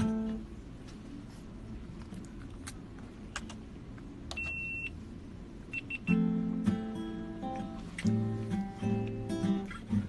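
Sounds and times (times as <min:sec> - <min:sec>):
acoustic guitar chord strummed: 0:00.0 - 0:00.4, 0:06.0 - 0:10.0.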